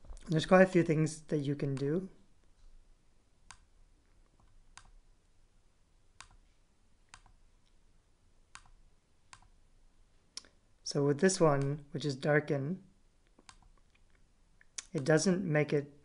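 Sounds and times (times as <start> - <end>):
computer mouse clicking: 3.5 - 3.7, 4.3 - 5.0, 6.2 - 6.4, 7.1 - 7.4, 8.5 - 9.6, 13.3 - 15.1.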